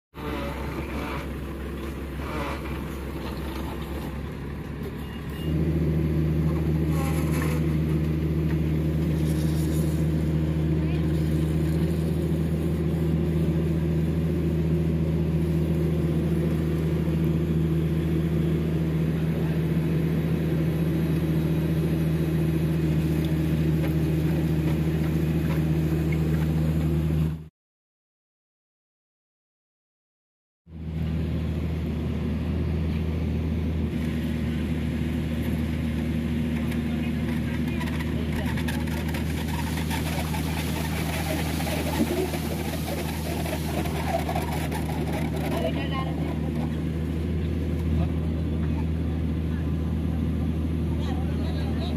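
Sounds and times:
drilling rig diesel engine: 0:00.1 - 0:27.5, 0:30.7 - 0:51.9.

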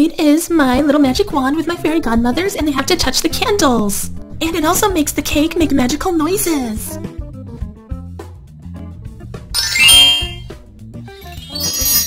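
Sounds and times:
shimmering twinkle: 0:09.6 - 0:10.5, 0:11.2 - 0:12.0
toy electronic magic chime: 0:09.6 - 0:10.5, 0:11.3 - 0:12.0.

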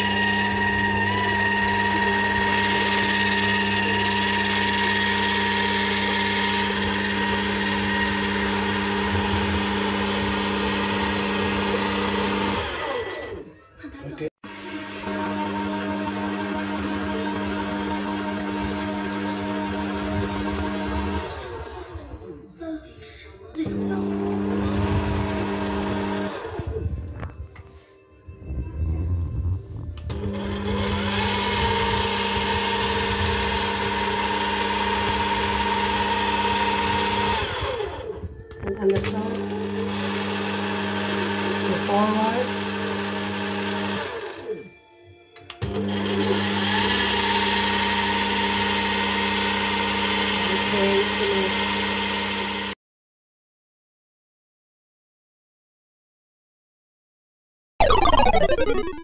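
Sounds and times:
juicer motor humming: 0:00.0 - 0:13.5, 0:14.5 - 0:22.2, 0:23.6 - 0:26.8, 0:30.0 - 0:38.2, 0:38.9 - 0:44.6, 0:45.5 - 0:52.8.

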